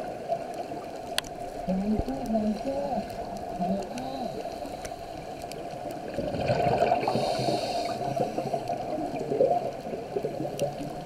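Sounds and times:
underwater breathing bubbles: 1.6s - 11.0s.

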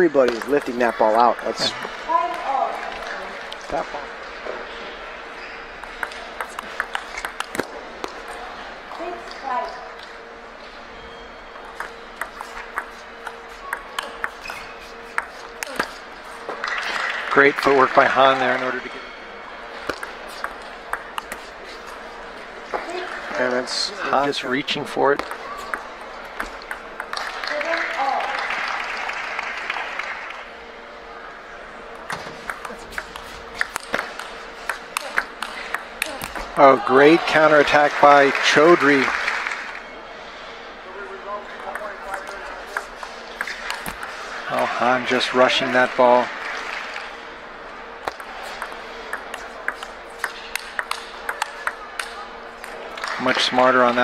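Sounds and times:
faint steady hum: 0.0s - 54.0s
table tennis ball bouncing: 0.2s - 1.5s, 5.8s - 10.2s, 11.5s - 16.9s, 19.8s - 23.1s, 24.9s - 28.4s, 31.9s - 36.6s, 41.6s - 44.2s, 48.0s - 53.1s
spectators applauding: 16.5s - 19.0s, 26.7s - 30.5s, 32.5s - 39.8s, 44.6s - 47.2s, 49.3s - 54.0s.

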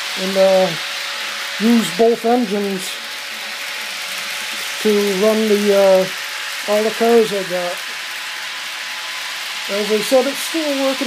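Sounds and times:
toy train running on track: 0.0s - 11.0s.

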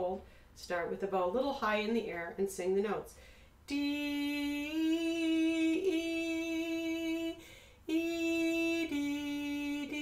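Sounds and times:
woman singing sustained notes: 3.7s - 10.0s.

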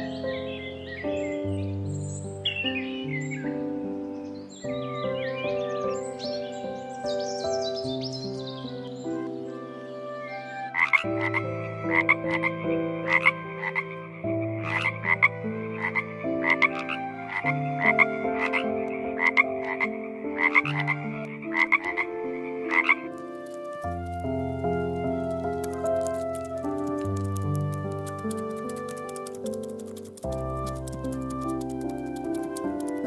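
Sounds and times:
small birds chirping: 0.0s - 9.4s, 13.8s - 33.0s
soft piano music: 0.0s - 33.0s
frog croaking: 10.7s - 23.0s, 25.5s - 26.9s.

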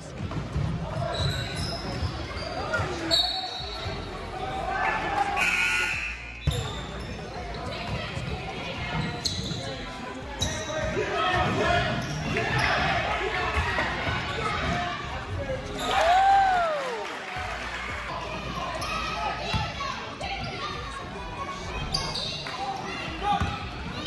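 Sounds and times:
people talking and calling out: 0.0s - 24.0s.

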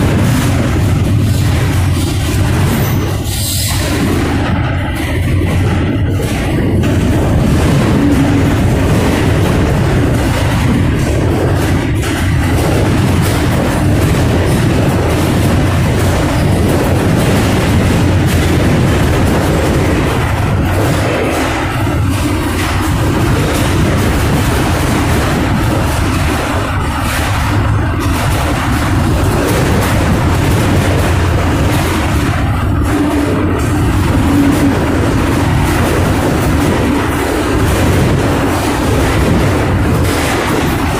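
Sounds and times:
boxcar rumbling and rattling: 0.0s - 40.9s
sharp knocks and jolts: 0.0s - 40.9s.

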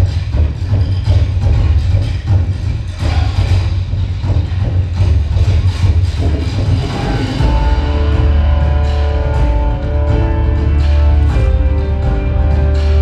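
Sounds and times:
dance music with heavy bass beat: 0.0s - 13.0s.

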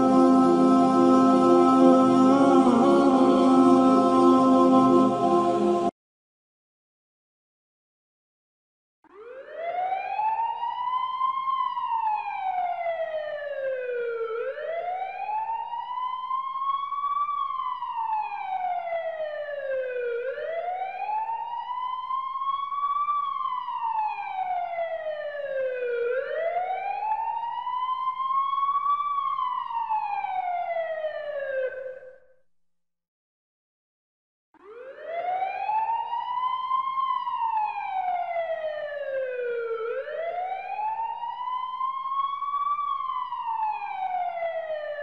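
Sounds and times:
emergency siren wailing: 0.0s - 5.9s, 9.1s - 32.2s, 34.6s - 45.0s.

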